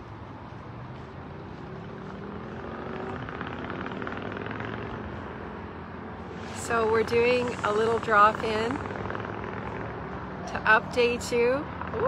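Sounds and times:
engine drone: 0.0 - 12.0.

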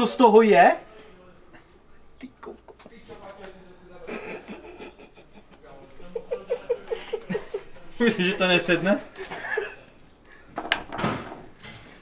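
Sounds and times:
men talking quietly: 0.0 - 10.5
laughter: 4.0 - 8.0, 9.2 - 10.0.

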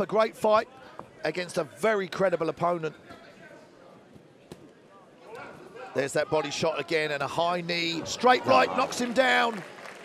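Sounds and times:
faint arena background: 0.0 - 10.0.

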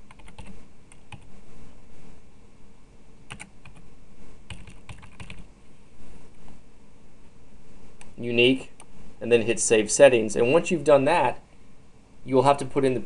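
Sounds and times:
computer keyboard typing: 0.0 - 1.3, 3.3 - 3.8, 4.5 - 5.5.

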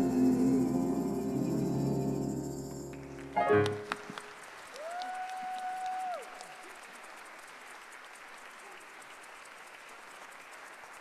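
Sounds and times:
faint applause: 3.0 - 11.0.

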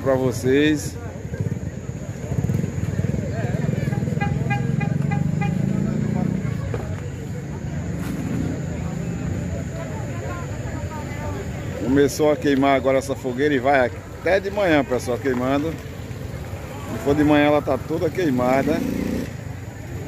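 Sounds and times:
vehicle engine passing: 1.2 - 10.7, 14.0 - 20.0.

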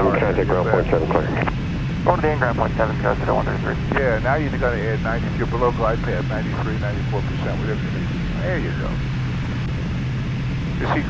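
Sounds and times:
jet cockpit engine and airflow noise: 0.0 - 11.0.

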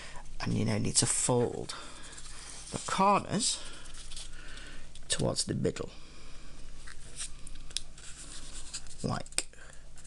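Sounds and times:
paper rustling and crinkling: 3.7 - 4.4, 7.1 - 9.4.

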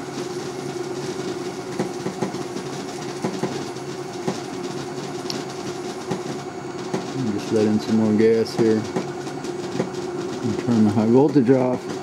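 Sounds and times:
electrical hum: 0.0 - 12.0
machinery drone: 0.0 - 12.0.

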